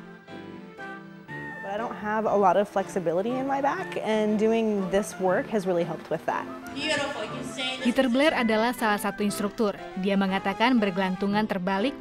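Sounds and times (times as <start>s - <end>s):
soft background music: 0.0s - 12.0s
woman speaking: 1.6s - 12.0s.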